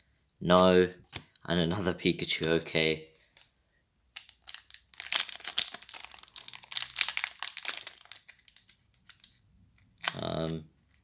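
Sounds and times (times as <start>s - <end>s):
foil wrapper crinkling: 4.2s - 9.3s.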